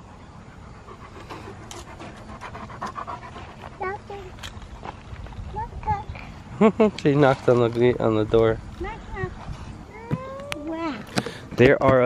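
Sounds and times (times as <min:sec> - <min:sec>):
dog panting: 0:00.6 - 0:05.1.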